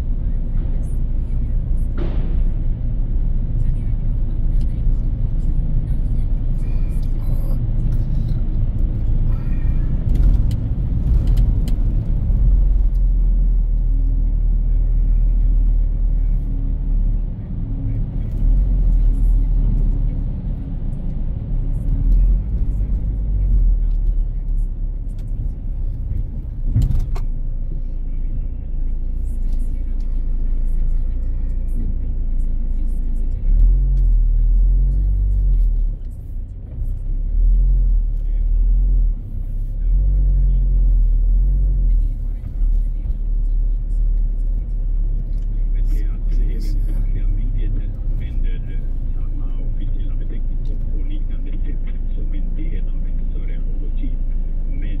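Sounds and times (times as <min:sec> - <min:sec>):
engine and tyre rumble in car: 0:00.0 - 0:55.0.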